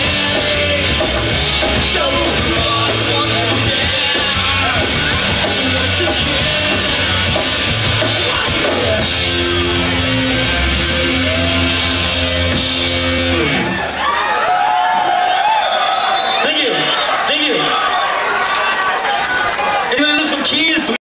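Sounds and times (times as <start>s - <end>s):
distorted guitar chord: 0.0s - 13.7s
drums and cymbals crashing: 0.0s - 14.0s
audience shouting and cheering: 0.0s - 21.0s.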